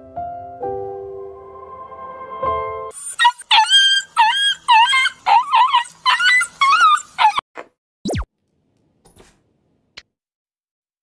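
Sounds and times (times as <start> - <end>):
dog yelping: 3.0 - 7.5.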